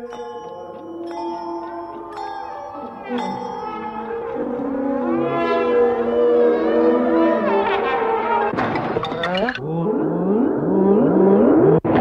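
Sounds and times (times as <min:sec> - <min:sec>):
pitched sound sweeping upward: 0:02.7 - 0:08.5.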